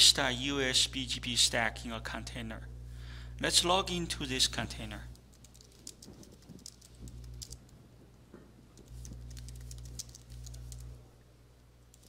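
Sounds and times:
low steady hum: 0.0 - 12.0
keyboard typing: 5.3 - 7.6, 8.8 - 10.9.

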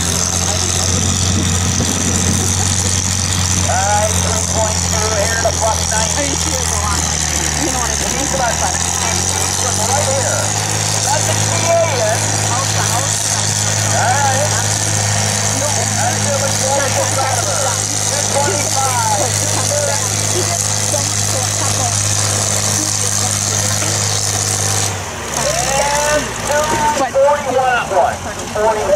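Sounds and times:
people's voices: 0.0 - 28.9
tractor engine under load: 0.0 - 28.9.

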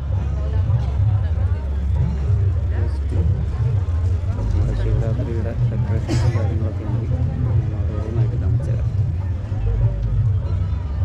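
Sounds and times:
people talking: 0.0 - 11.0
steady low rumble: 0.0 - 11.0.

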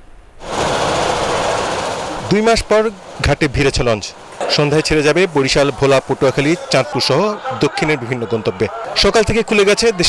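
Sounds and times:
outdoor river terminal noise: 0.0 - 10.0.

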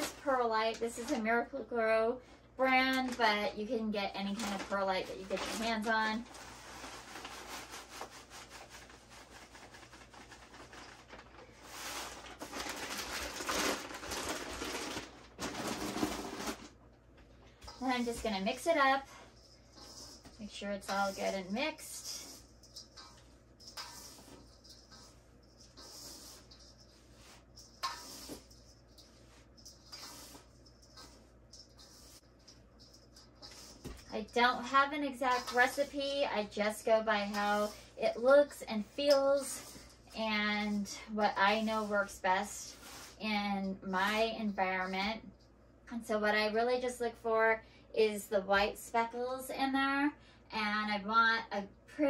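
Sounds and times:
plastic bag rustling: 4.3 - 16.8, 17.8 - 44.9
granules pouring into bowl: 11.7 - 16.6.

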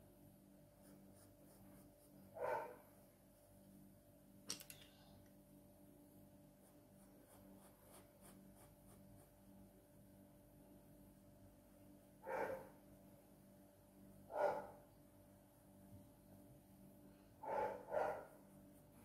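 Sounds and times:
pencil shading on paper: 0.6 - 2.5, 6.5 - 9.5.

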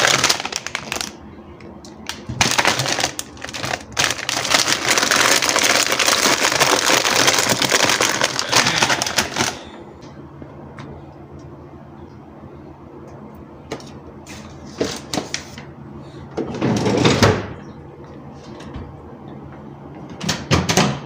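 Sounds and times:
plastic bags crinkling: 0.0 - 1.2, 2.0 - 9.7
low steady hum: 0.0 - 21.0.

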